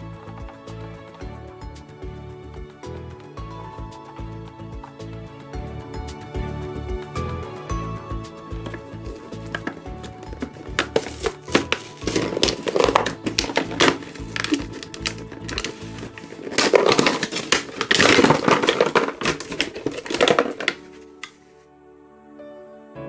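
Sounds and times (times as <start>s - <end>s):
background music: 0.0s - 23.0s
plastic packaging crinkling: 8.6s - 21.5s.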